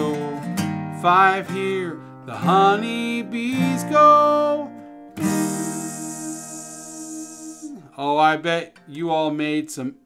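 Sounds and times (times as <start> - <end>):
acoustic guitar chord ringing: 0.0 - 9.0.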